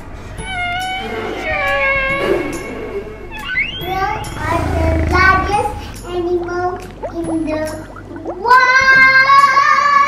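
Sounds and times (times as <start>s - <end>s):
background music: 0.0s - 10.0s
whale calls: 0.3s - 6.1s.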